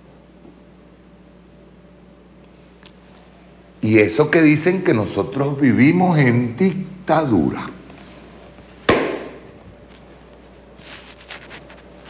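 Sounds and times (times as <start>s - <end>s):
sharp knock: 8.9s - 9.4s.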